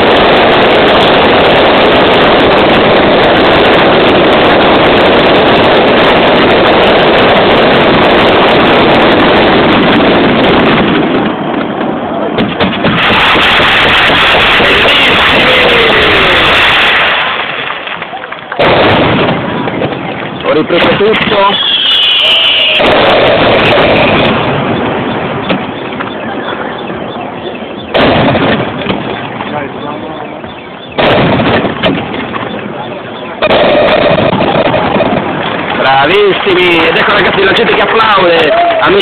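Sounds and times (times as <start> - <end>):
fireworks barrage: 0.0 - 39.0.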